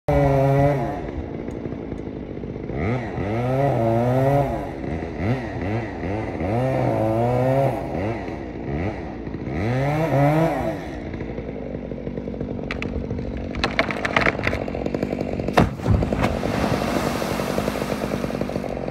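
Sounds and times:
chainsaw cutting wood: 0.1s - 18.9s
wood cracking: 11.7s - 18.9s
pole splashing into water: 15.5s - 18.6s.

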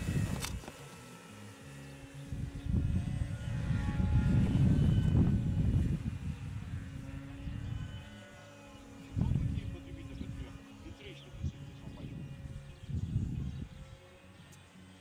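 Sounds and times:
model aeroplane engine droning: 0.0s - 15.0s.

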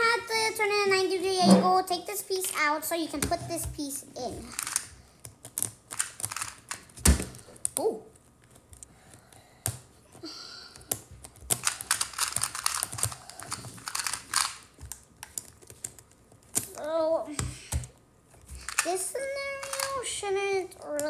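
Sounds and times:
plastic puzzle pieces clicking: 4.4s - 7.8s, 10.8s - 16.8s, 17.4s - 20.0s.

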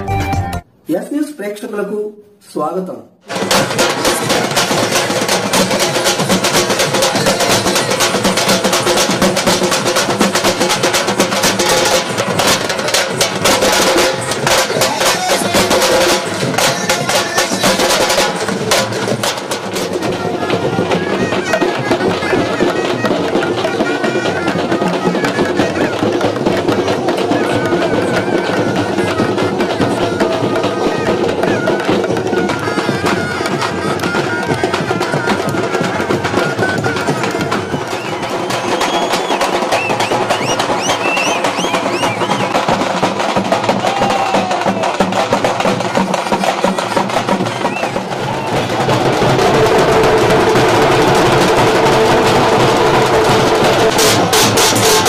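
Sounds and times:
large drums beaten with sticks: 3.2s - 55.0s.

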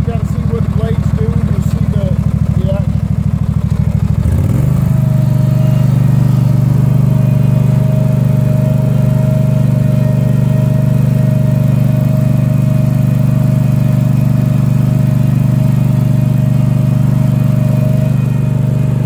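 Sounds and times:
turf machine engine running: 0.0s - 19.0s.

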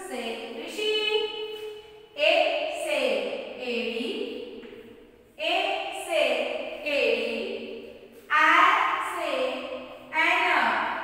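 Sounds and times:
woman calling sing-song syllables: 8.3s - 10.8s.

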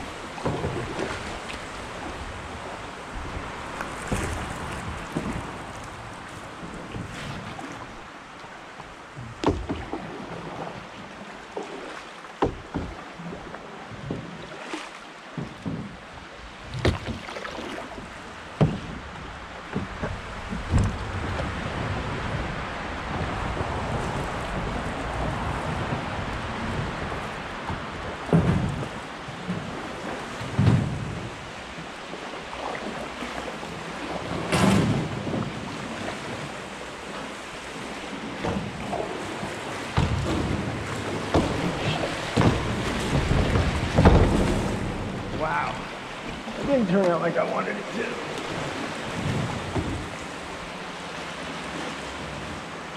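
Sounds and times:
paddle knocking on canoe: 0.0s - 8.0s, 8.8s - 52.6s
river water rushing: 0.0s - 52.9s.

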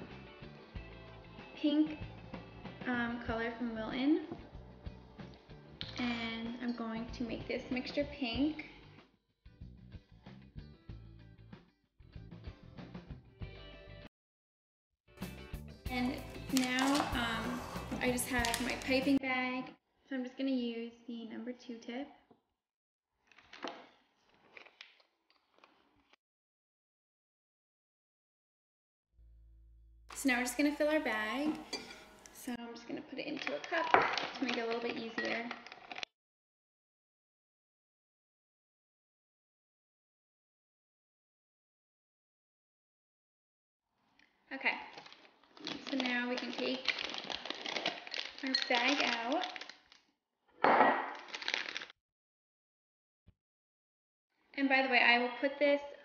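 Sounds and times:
glass clinking on table: 31.7s - 32.0s.

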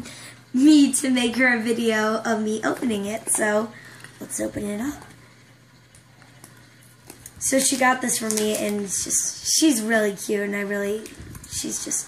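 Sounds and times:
foil wrapper crinkling: 6.1s - 9.3s.

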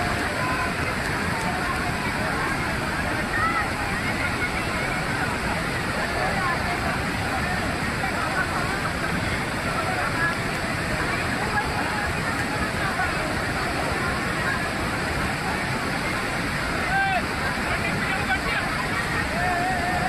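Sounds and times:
floodwater rushing down waterfall: 0.0s - 20.0s.

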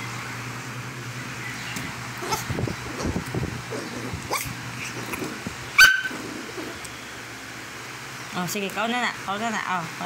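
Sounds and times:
small dog yelping: 2.2s - 6.8s
small dog whining: 2.2s - 6.9s.

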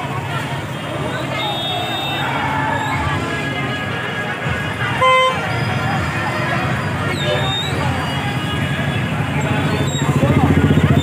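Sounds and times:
crowd chatter: 0.0s - 11.0s
street traffic: 0.0s - 11.0s
vehicle horn toot: 4.7s - 5.7s.

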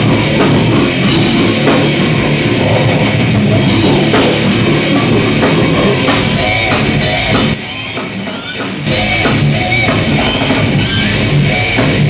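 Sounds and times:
death metal band playing: 0.0s - 12.0s.

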